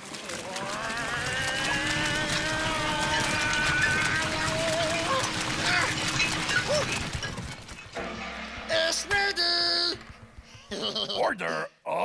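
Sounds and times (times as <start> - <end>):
electric blender running: 0.3 - 7.3.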